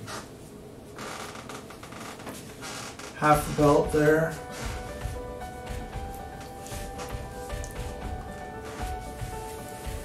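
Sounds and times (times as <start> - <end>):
heavy coat fabric rustling: 2.4 - 10.0.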